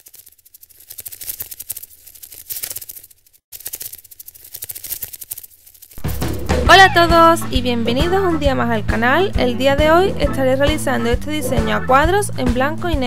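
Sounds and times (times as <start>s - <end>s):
rapid dense clicking and crackling: 0.0s - 6.0s.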